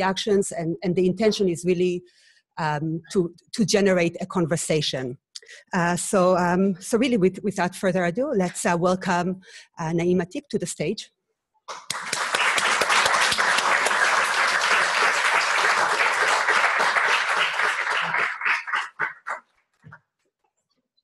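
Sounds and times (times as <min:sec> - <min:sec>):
audience applauding: 0:11.7 - 0:19.6.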